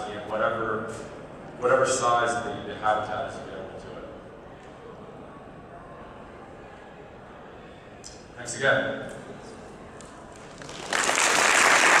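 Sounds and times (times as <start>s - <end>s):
audience applauding: 10.4s - 12.0s.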